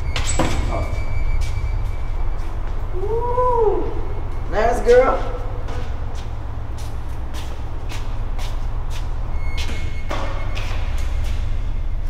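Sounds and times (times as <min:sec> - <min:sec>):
steady low rumble: 0:00.0 - 0:12.0
footsteps clicking: 0:05.2 - 0:11.7.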